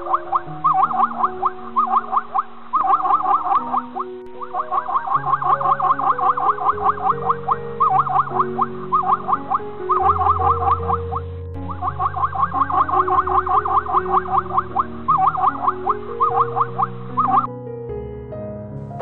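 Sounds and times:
background music with swooping notes: 0:00.0 - 0:17.5.

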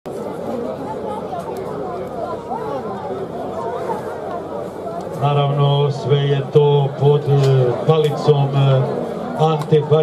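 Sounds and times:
crowd chattering: 0:00.1 - 0:10.0.

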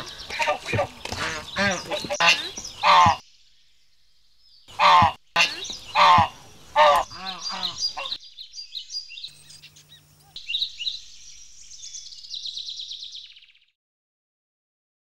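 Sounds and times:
geese honking loudly: 0:00.0 - 0:03.2, 0:04.7 - 0:08.2
birds chirping in high trills: 0:00.0 - 0:13.8.

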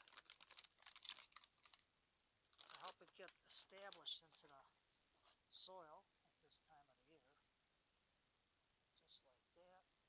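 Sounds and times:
plastic bag crinkling: 0:00.0 - 0:01.9, 0:02.5 - 0:04.6.

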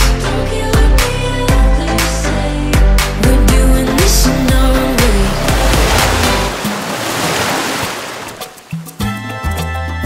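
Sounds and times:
intro music: 0:03.3 - 0:07.2
noisy wash like breaking surf: 0:05.0 - 0:08.7.

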